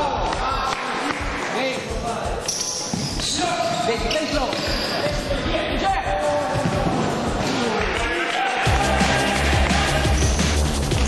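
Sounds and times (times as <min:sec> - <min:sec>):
shoes squeaking on floor: 0:01.2 - 0:07.8.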